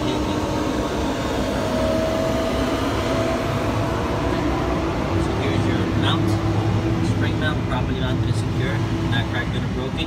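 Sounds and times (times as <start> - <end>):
low mechanical rumble: 0.0 - 10.0.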